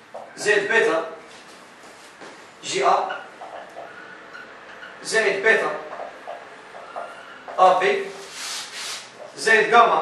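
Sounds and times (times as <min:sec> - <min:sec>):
marker on whiteboard: 0:03.0 - 0:09.8.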